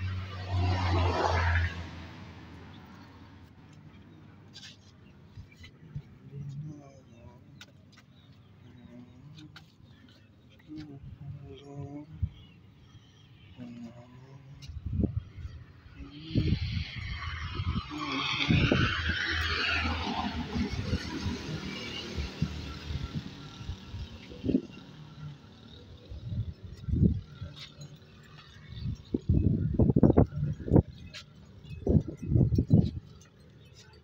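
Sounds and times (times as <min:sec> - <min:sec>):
road vehicle passing: 0:00.0 - 0:11.6, 0:13.2 - 0:34.0.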